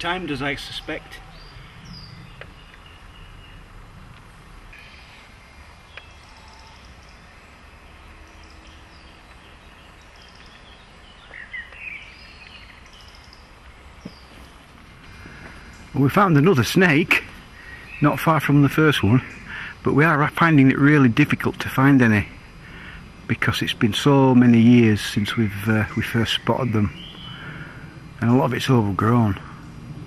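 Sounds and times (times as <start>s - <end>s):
bird chirps: 0.0s - 29.8s
bird calls: 0.0s - 29.9s.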